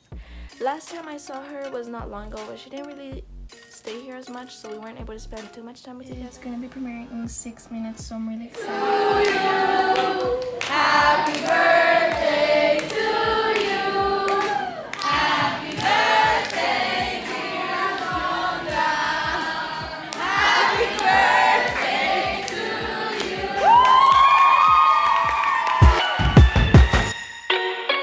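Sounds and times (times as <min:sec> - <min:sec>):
group singing: 0:08.5 - 0:24.1
hand clapping: 0:08.6 - 0:27.1.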